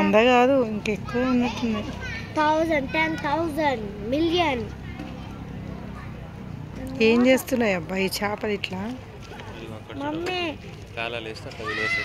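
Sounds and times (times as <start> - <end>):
children talking and calling out: 0.0 - 7.5, 11.5 - 12.0.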